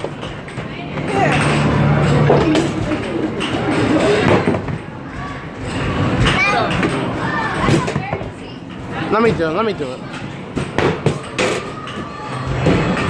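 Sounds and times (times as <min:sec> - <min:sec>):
balls knocking and thudding: 0:00.0 - 0:13.0.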